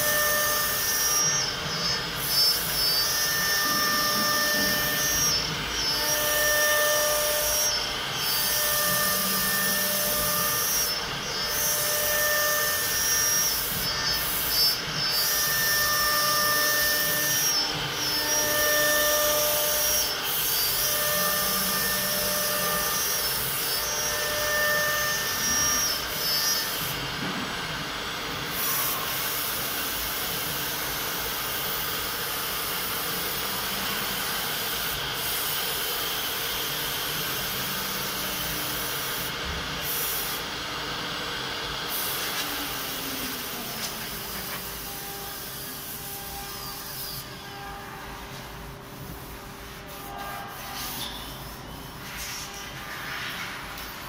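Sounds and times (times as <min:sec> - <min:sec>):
wood router cutting wood: 0:00.0 - 0:35.2
router whine: 0:00.0 - 0:49.1.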